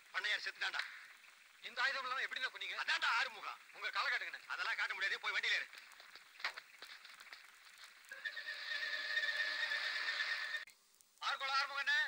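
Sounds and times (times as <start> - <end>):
steady hiss: 0.0 - 12.0
trembling pitched call: 8.1 - 10.6.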